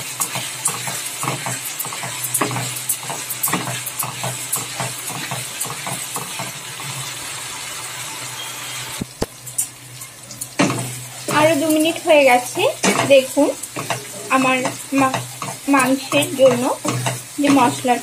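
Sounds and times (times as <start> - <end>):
spatula stirring and scraping: 0.0 - 7.3, 9.5 - 18.0
masala sizzling in oil: 0.0 - 18.0.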